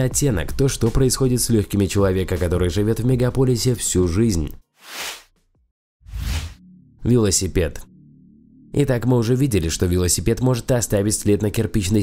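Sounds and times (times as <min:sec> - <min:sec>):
faint background music: 0:00.0 - 0:04.6, 0:06.8 - 0:12.0
whoosh transition effects: 0:06.1 - 0:06.6.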